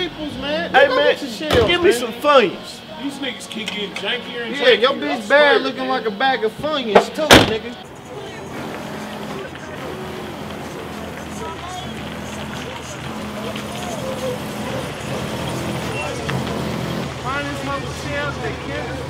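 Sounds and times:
muffled voices: 0:00.0 - 0:19.0
car engine running: 0:08.5 - 0:19.0.

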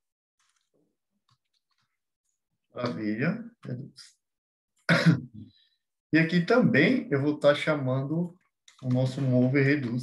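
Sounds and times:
man clearing his throat: 0:04.9 - 0:05.5.

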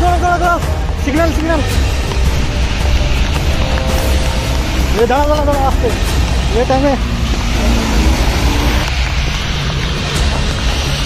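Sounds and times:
low street rumble: 0:00.0 - 0:11.0
rain hiss on wet road: 0:00.0 - 0:11.0.

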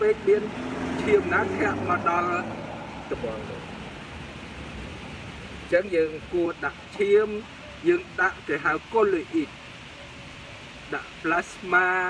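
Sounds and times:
man speaking: 0:00.0 - 0:03.7, 0:05.7 - 0:09.5, 0:10.9 - 0:12.0.

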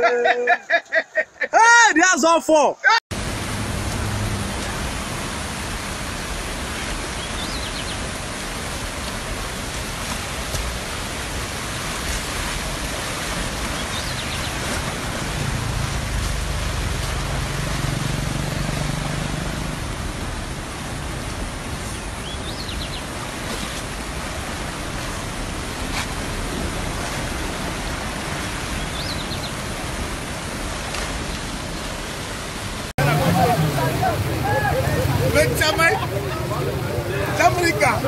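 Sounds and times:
floodwater rushing: 0:03.1 - 0:38.0.

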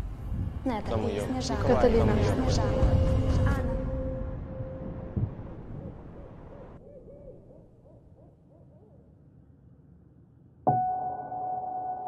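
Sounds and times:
soft low thump: 0:05.1 - 0:06.0.

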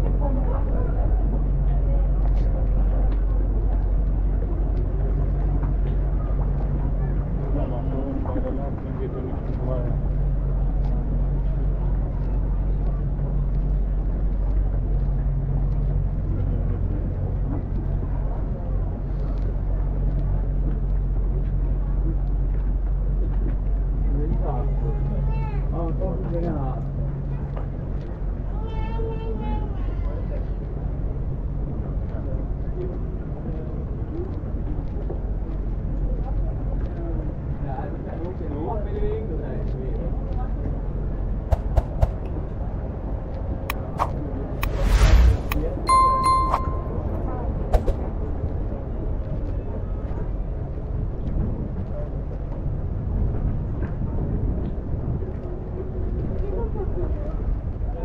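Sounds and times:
chatter of passers-by: 0:00.0 - 0:58.0
low rumble: 0:40.6 - 0:56.8
short ringing tone: 0:45.0 - 0:47.2.

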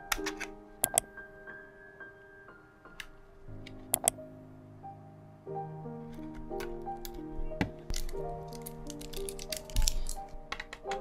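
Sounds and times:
soft background music: 0:00.0 - 0:11.0
battery clicking against plastic mouse: 0:04.0 - 0:04.2.

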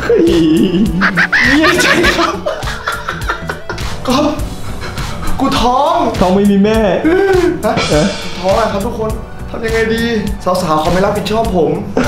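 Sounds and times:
background music with steady beat: 0:00.0 - 0:12.0
man laughing loudly: 0:00.4 - 0:04.3
man speaking: 0:07.6 - 0:11.7.

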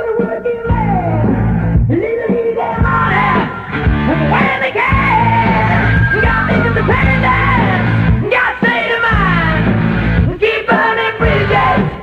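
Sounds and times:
hard rock band: 0:00.0 - 0:12.0
man singing: 0:00.0 - 0:12.0.

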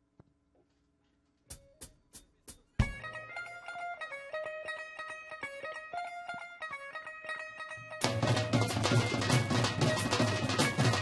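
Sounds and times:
twangy guitar melody: 0:02.8 - 0:11.0.

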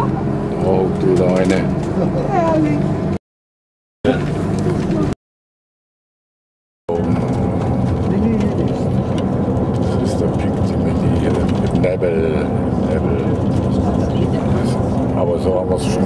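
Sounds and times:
vehicle engine and road drone: 0:00.0 - 0:03.2, 0:04.0 - 0:05.2, 0:06.9 - 0:16.0.

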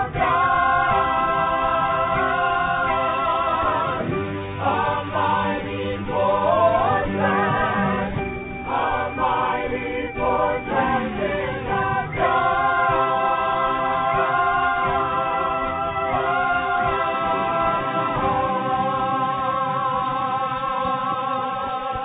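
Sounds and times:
choir singing worship song: 0:00.0 - 0:22.0.

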